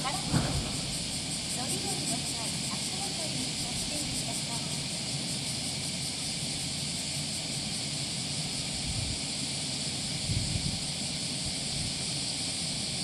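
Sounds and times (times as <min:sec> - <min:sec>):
voices: 0:00.0 - 0:05.0
steady high hiss: 0:00.0 - 0:13.0
brief thump: 0:00.2 - 0:01.1.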